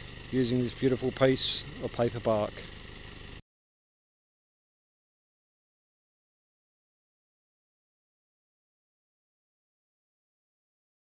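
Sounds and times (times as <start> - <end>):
low background hum: 0.0 - 3.4.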